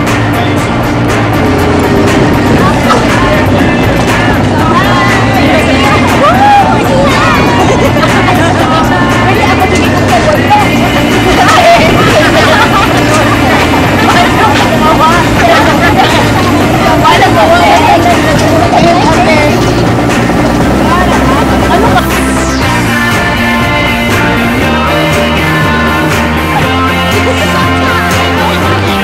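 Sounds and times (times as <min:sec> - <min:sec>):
steady low hum: 0:00.0 - 0:28.0
group talking and laughing: 0:00.0 - 0:29.0.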